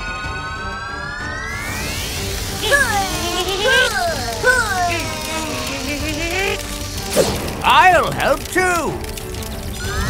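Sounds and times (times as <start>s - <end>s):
background music: 0.0s - 10.0s
cartoon voices straining: 2.6s - 6.7s.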